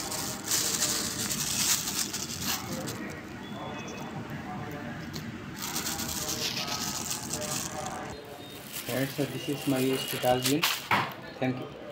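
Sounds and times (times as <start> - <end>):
plastic bag crinkling: 0.0 - 3.3, 5.6 - 10.9.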